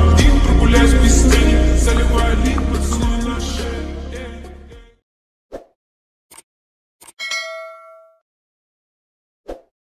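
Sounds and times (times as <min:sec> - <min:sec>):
notification bell ding: 0:07.2 - 0:08.2.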